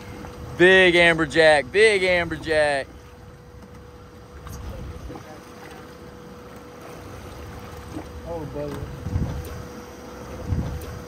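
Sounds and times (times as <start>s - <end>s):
wind and boat rumble: 0.0s - 11.0s.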